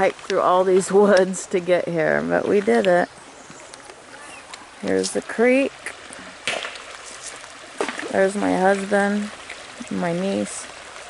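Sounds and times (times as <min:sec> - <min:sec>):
creek water rushing over rocks: 0:00.0 - 0:11.0.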